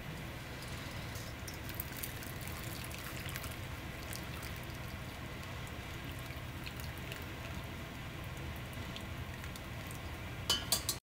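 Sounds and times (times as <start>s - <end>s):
liquid dripping from strainer: 1.4s - 10.2s.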